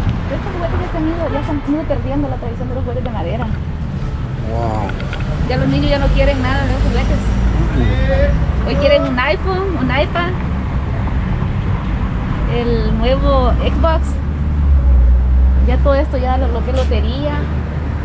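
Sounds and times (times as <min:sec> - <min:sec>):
low rumble of street noise: 0:00.0 - 0:18.0
voices talking: 0:00.3 - 0:11.1, 0:12.4 - 0:14.2, 0:15.6 - 0:17.5.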